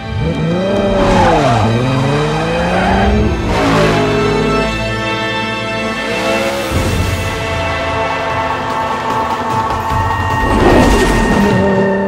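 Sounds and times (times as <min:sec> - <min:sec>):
sports car accelerating: 0:00.0 - 0:07.2.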